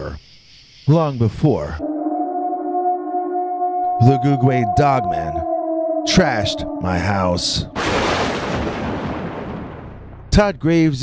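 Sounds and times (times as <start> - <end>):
rumbling boom: 7.6 - 10.3.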